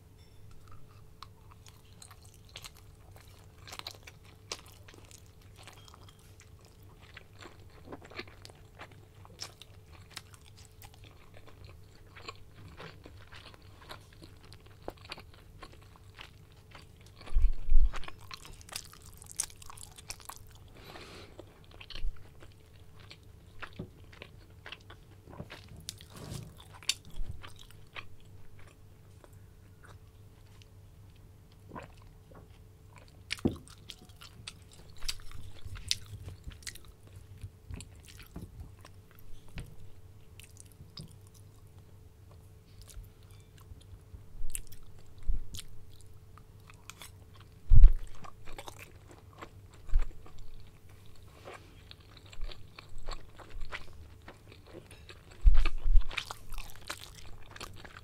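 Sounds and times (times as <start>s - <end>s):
faint steady hum: 0.0s - 58.0s
chewing and biting food: 0.6s - 20.7s, 21.3s - 43.9s, 44.5s - 58.0s.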